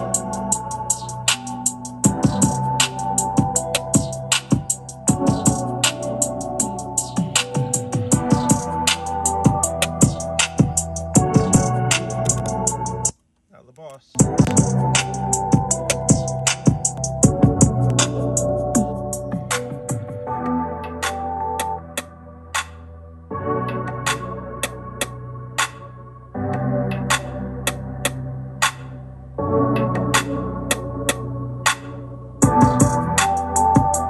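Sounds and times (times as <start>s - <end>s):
drum machine hits: 0.0s - 13.1s, 14.2s - 20.2s, 32.4s - 34.0s
synth bass line: 0.0s - 13.1s, 14.2s - 22.5s, 32.4s - 34.0s
electronic music through speakers: 0.0s - 34.0s.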